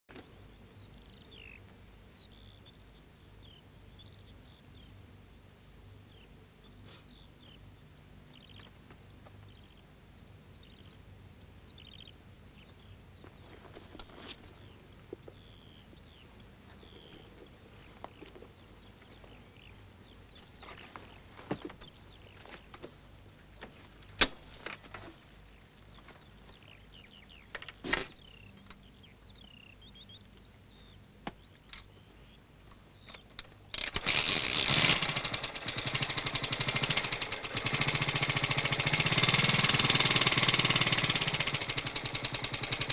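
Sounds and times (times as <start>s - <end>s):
birds chirping: 0.1s - 42.9s.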